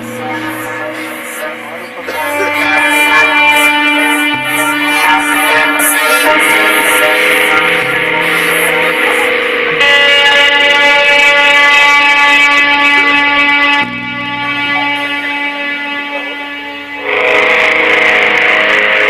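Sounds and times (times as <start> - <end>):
distorted electric guitar chords: 0.0 - 19.0.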